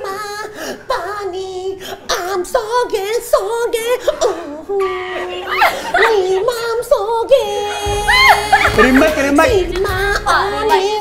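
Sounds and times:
woman singing into a microphone: 4.4 - 8.8, 9.5 - 11.0.

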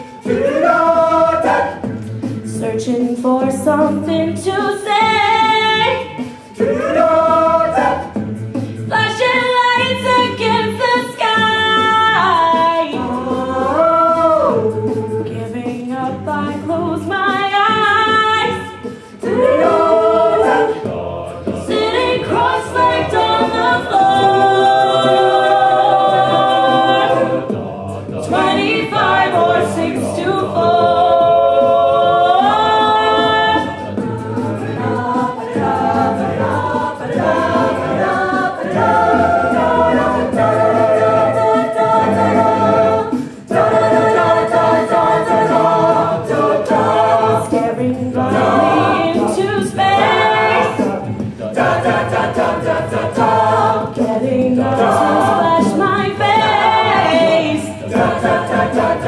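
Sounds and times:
a cappella group singing: 0.0 - 59.0.

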